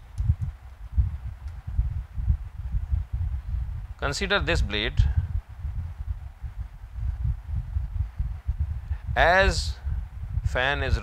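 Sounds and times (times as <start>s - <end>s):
uneven low rumble: 0.0s - 11.0s.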